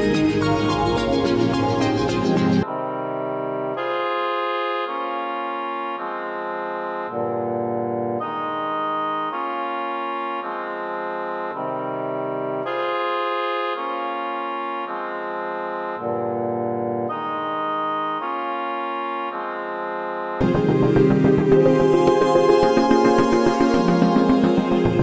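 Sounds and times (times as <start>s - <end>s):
electronic organ keyboard chords: 0.0s - 25.0s.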